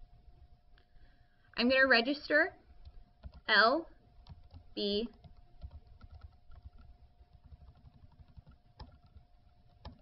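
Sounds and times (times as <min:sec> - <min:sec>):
faint steady hum: 0:00.0 - 0:10.0
keyboard typing: 0:02.8 - 0:03.5, 0:04.2 - 0:10.0.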